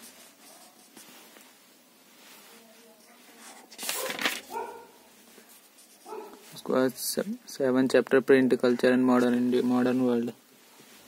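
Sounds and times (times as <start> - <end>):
paper page turning: 3.4 - 4.7.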